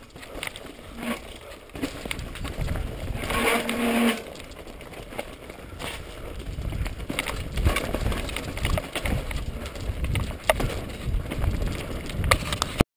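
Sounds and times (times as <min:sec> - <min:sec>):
bike rattling over bumps: 0:00.0 - 0:12.8
bike tyres crunching over rocks: 0:00.0 - 0:12.8.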